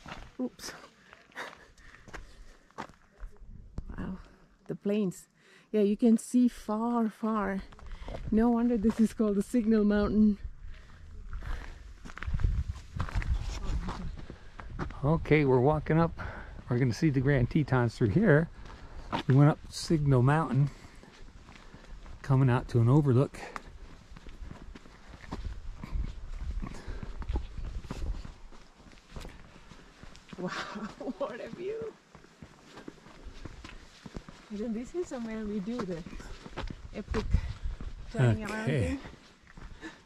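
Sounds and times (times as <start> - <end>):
footsteps on paved trail: 0.0 - 4.5, 7.2 - 40.0.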